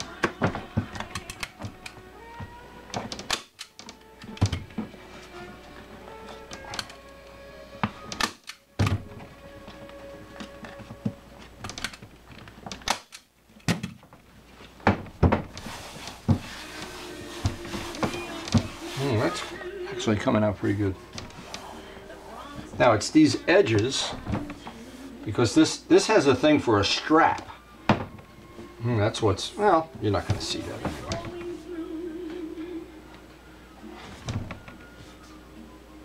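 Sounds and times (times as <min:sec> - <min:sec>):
faint music: 0:00.0 - 0:36.0.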